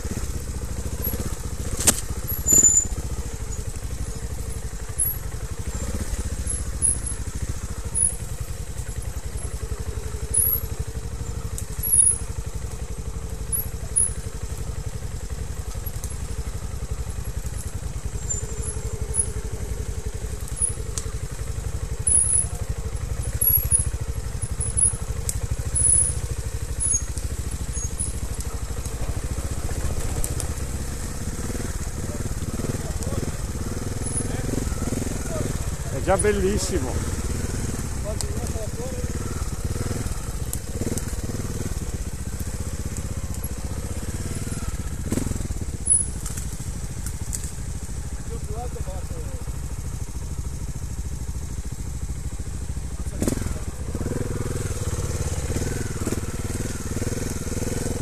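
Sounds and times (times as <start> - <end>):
motorcycle engine at low revs: 0.0 - 58.0
sharp clicks and knocks: 1.7 - 2.7.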